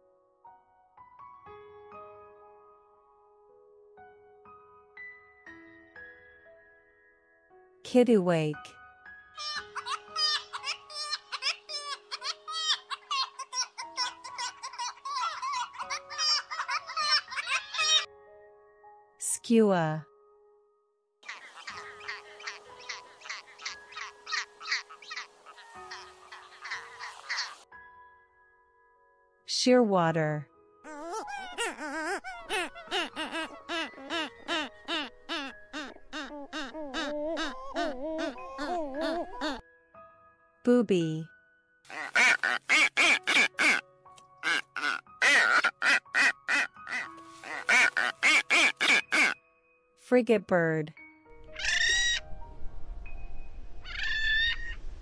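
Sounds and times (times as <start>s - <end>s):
skua calling harsh notes: 41.9s - 43.8s, 44.4s - 49.4s.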